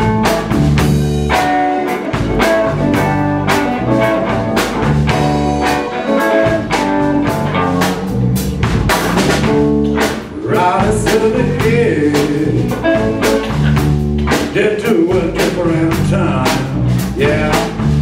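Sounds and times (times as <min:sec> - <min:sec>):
live blues band playing: 0:00.0 - 0:18.0.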